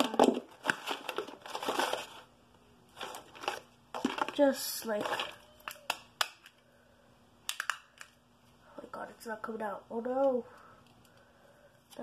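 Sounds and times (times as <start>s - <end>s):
small items handled in a drawer: 0.0s - 2.3s, 3.0s - 5.4s.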